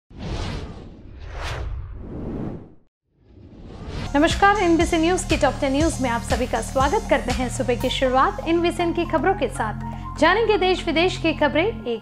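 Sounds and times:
whoosh sound effects: 0.1 - 4.2.

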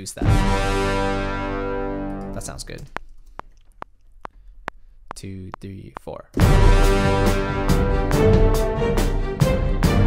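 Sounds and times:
metronome ticking: 2.1 - 6.4.

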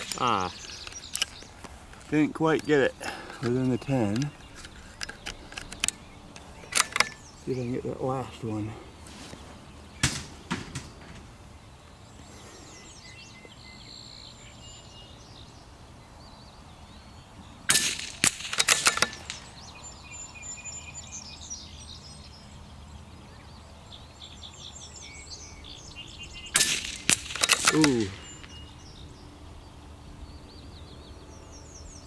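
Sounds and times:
birds chirping: 0.0 - 32.0
quick mechanical clicks: 6.7 - 7.2, 17.7 - 19.4, 26.6 - 28.6
rifle shot: 10.0 - 10.9, 17.7 - 19.5, 26.5 - 28.4.

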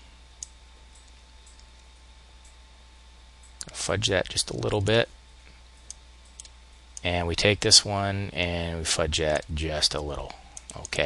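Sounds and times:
low steady hum: 0.0 - 11.0
computer mouse clicks: 0.4 - 2.6, 5.8 - 6.6.

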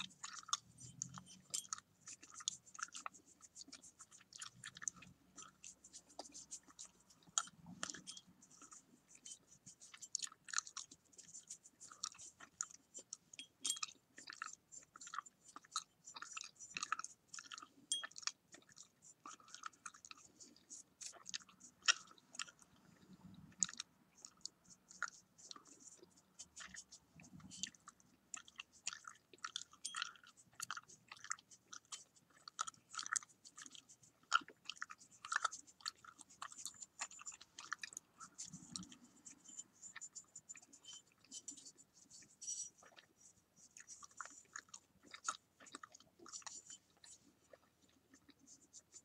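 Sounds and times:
gum chewing clicks and smacks: 0.0 - 49.0.

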